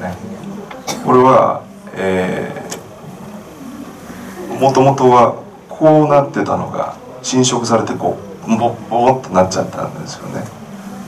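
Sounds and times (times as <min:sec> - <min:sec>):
low voice sounds: 0:00.0 - 0:05.5.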